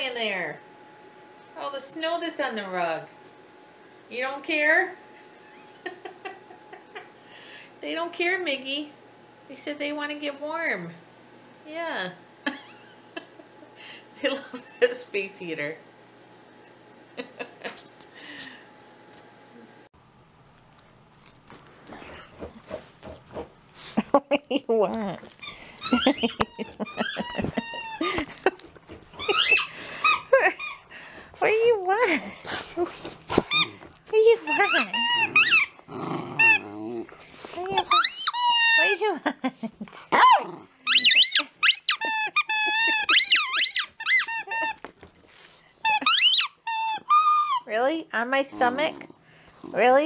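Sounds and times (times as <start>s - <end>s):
dog whimpering: 25.3s - 28.3s, 29.2s - 30.9s, 32.8s - 33.8s, 34.4s - 39.0s, 40.1s - 44.8s, 45.9s - 47.7s
rubber squeaky toy squeaking: 29.2s - 30.7s, 34.4s - 35.7s, 37.7s - 39.0s, 40.8s - 44.8s, 45.8s - 47.7s.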